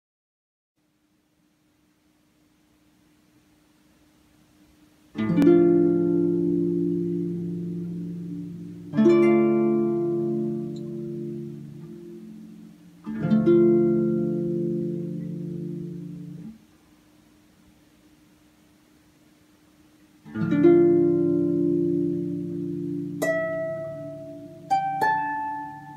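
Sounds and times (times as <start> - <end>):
harp chords ringing: 5.2 - 16.5, 20.3 - 25.9.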